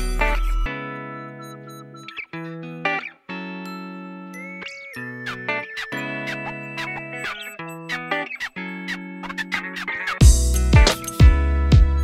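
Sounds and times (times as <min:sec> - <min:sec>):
sustained pitched notes: 0:05.0 - 0:12.0
deep bass beat: 0:10.2 - 0:12.0.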